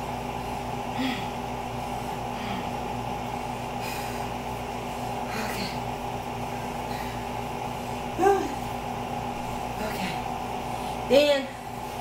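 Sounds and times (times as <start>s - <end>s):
steady background hum: 0.0s - 12.0s
woman breathing heavily: 0.5s - 8.8s.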